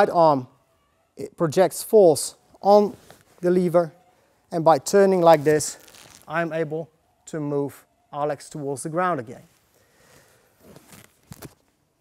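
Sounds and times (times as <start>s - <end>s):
clothing rustling: 2.8s - 3.7s, 4.9s - 6.6s, 9.4s - 11.8s.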